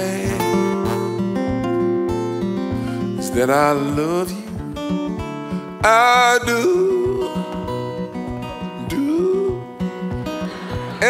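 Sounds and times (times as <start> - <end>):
acoustic guitar picking: 0.0 - 11.0.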